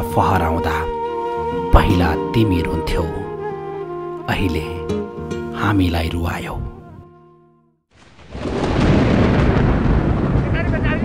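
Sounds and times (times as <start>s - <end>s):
snow avalanche rumbling: 8.0s - 11.0s.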